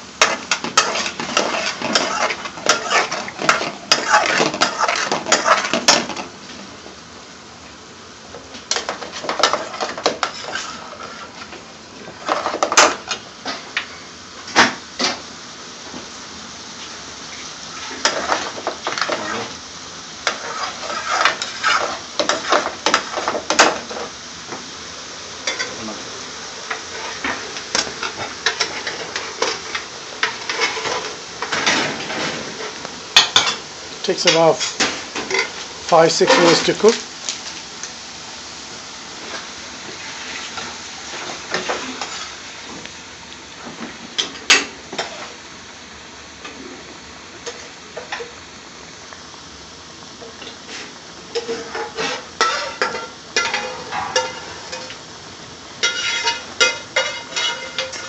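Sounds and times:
steady low hiss: 0:00.0 - 0:58.0
metal ladle scraping a pan: 0:00.2 - 0:06.0, 0:09.4 - 0:11.4, 0:20.3 - 0:23.2, 0:50.7 - 0:55.0, 0:55.8 - 0:58.0.

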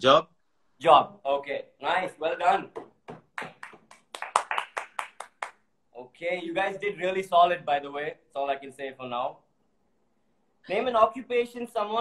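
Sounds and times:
hands clapping: 0:01.9 - 0:05.7.

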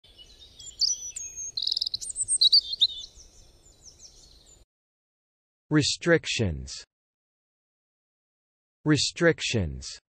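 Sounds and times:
birdsong chirps and whistles: 0:00.0 - 0:04.6
bird trill: 0:00.1 - 0:04.6.

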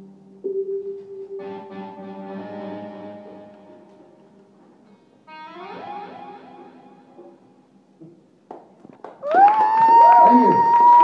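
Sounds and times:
electric guitar sliding notes: 0:00.0 - 0:07.8.

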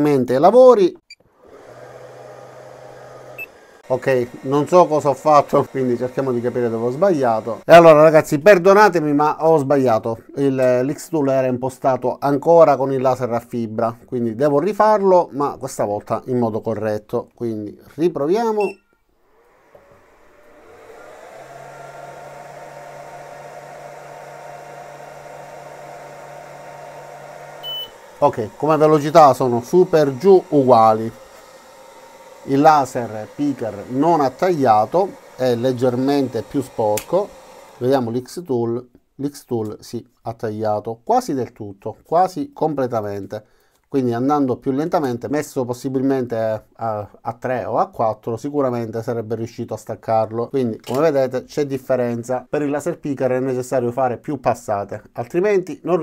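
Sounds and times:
fans whirring: 0:01.4 - 0:07.7, 0:19.2 - 0:38.1
faint short beep: 0:27.6 - 0:27.9.

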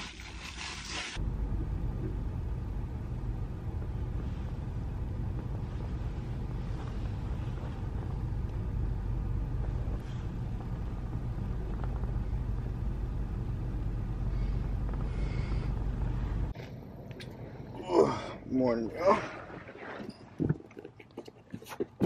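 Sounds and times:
steady low rumble: 0:01.2 - 0:19.8
bedding rustling: 0:05.6 - 0:08.4.

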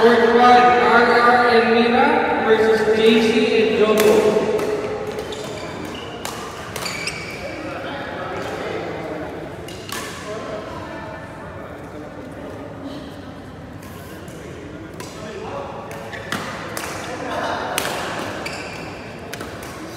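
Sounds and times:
racket hitting shuttlecock: 0:04.0 - 0:07.4, 0:09.7 - 0:10.3, 0:15.9 - 0:17.1, 0:17.7 - 0:19.9.

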